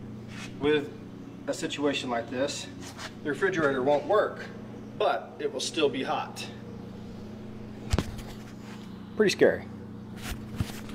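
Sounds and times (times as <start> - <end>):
refrigerator humming: 0.0 - 10.9.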